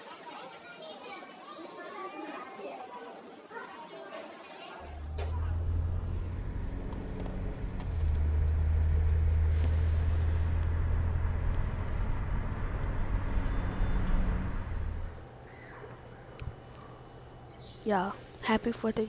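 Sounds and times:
car road and engine rumble: 0:04.8 - 0:15.4.

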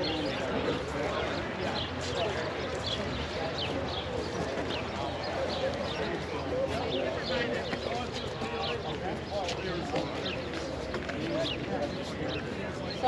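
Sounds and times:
people chattering: 0:00.0 - 0:13.0.

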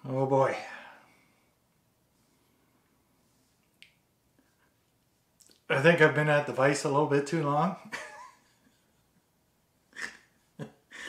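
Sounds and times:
man laughing under his breath: 0:07.8 - 0:11.0.

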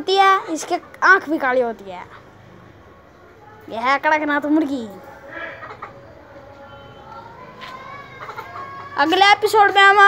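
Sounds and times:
faint chicken calls: 0:05.2 - 0:09.0.

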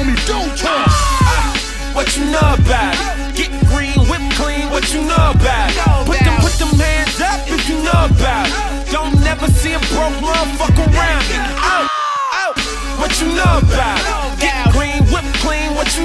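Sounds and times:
hip hop beat: 0:00.0 - 0:16.0
vocals over beat: 0:00.0 - 0:16.0.

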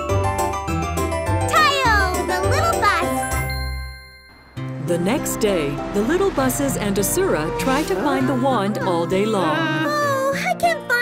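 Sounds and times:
cartoon background music: 0:00.0 - 0:03.7, 0:04.6 - 0:11.0.

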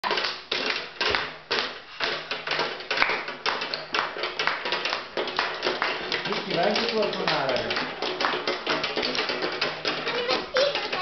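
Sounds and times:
toys banging on wooden table: 0:00.0 - 0:11.0.

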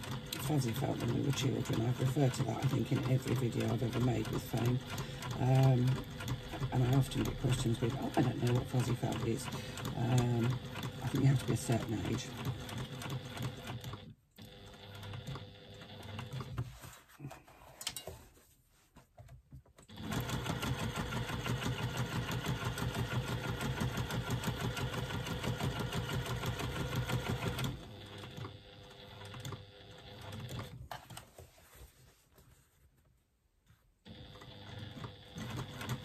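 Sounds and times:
sewing machine stitching: 0:00.0 - 0:17.1, 0:19.9 - 0:31.3, 0:34.1 - 0:36.0.

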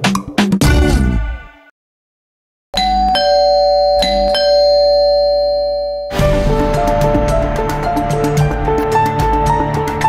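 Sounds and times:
doorbell ding-dong chime: 0:02.8 - 0:06.2.

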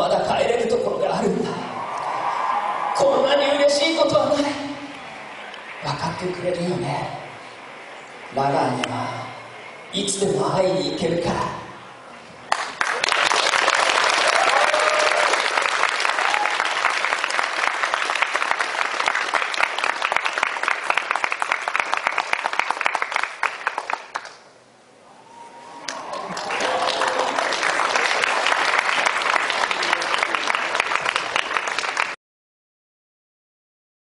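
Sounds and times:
audience applauding: 0:12.5 - 0:24.4, 0:25.6 - 0:32.2.

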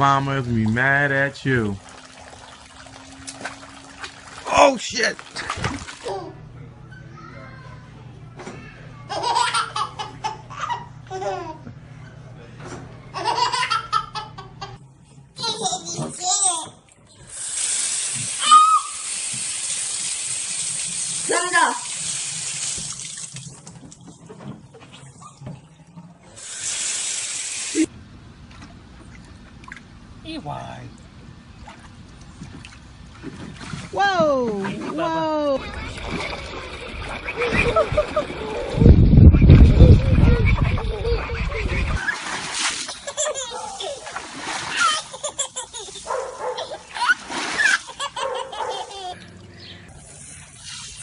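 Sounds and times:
hand splashing water: 0:05.1 - 0:06.1, 0:42.0 - 0:43.0.

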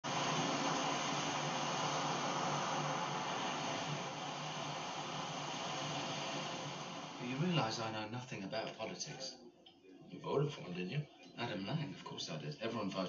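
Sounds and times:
sea surf breaking on beach: 0:00.0 - 0:07.5.

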